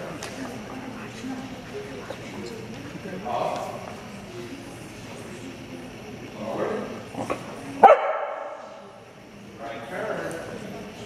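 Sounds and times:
dog barking in a large hall: 0:07.0 - 0:08.9.

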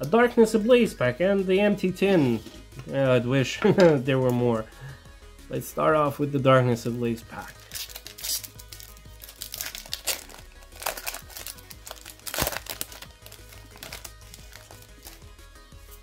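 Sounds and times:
quiet background music: 0:00.0 - 0:16.0
foil wrapper tearing and crinkling: 0:07.5 - 0:15.3.

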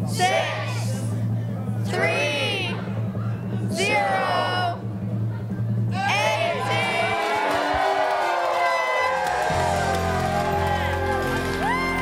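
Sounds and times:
crowd cheering and whooping: 0:06.0 - 0:12.0
music with held chords: 0:09.2 - 0:12.0.

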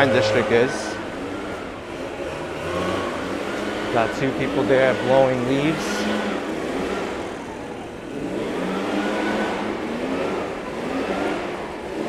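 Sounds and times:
leaf blowers droning: 0:00.0 - 0:12.0
street traffic: 0:00.0 - 0:12.0.

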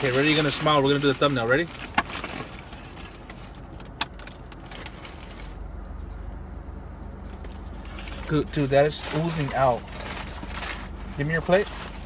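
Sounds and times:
paper wrapper crinkling: 0:00.0 - 0:05.6, 0:07.3 - 0:12.0
car engine idling: 0:00.0 - 0:12.0.

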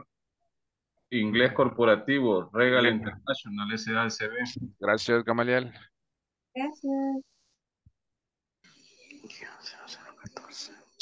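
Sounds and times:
faint whispery speech: 0:09.2 - 0:10.9.

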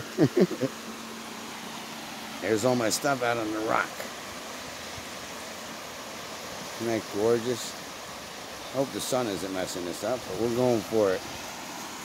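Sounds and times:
fast river current rushing: 0:00.0 - 0:12.0.

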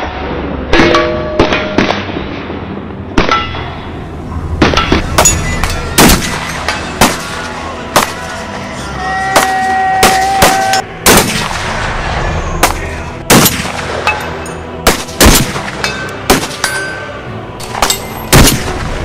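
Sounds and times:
other gunshots: 0:04.6 - 0:07.4, 0:09.4 - 0:16.7, 0:17.7 - 0:19.0
heavy rifle shots: 0:04.6 - 0:08.4, 0:09.4 - 0:16.7, 0:17.6 - 0:19.0.

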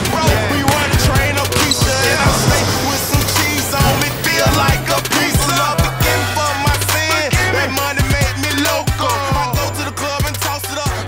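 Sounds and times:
hip hop music: 0:00.0 - 0:11.0.

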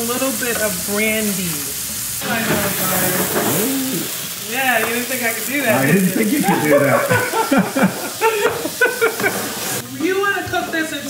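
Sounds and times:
alcohol hissing in hot pan: 0:00.0 - 0:11.0
meat sizzling in skillet: 0:00.0 - 0:11.0.

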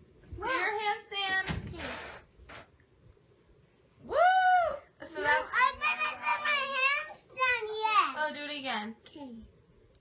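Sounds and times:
person cheering woo: 0:04.1 - 0:04.9.

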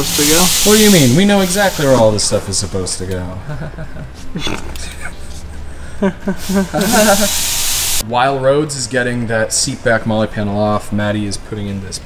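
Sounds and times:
loud even hiss: 0:00.0 - 0:02.7, 0:06.3 - 0:08.0
person speaking: 0:00.0 - 0:03.4, 0:06.4 - 0:07.3.

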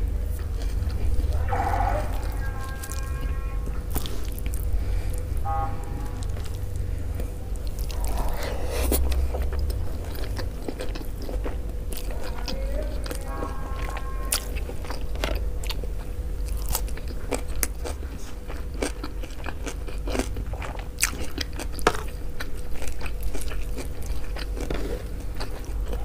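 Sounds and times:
faint steady hum: 0:00.0 - 0:26.0
wet mouth clicks and chewing: 0:06.1 - 0:26.0.

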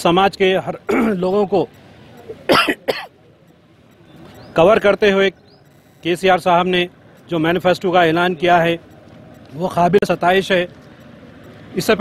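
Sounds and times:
man coughing: 0:00.9 - 0:01.2, 0:02.5 - 0:03.1.

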